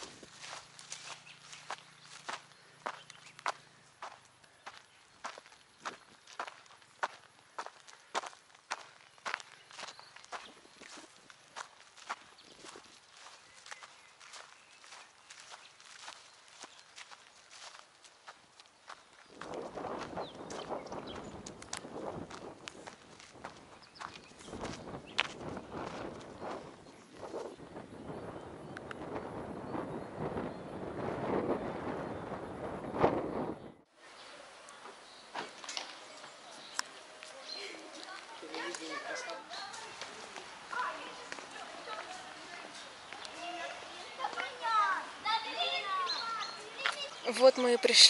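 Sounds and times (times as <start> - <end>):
footsteps on dirt path: 0.0 - 28.0, 35.3 - 48.0.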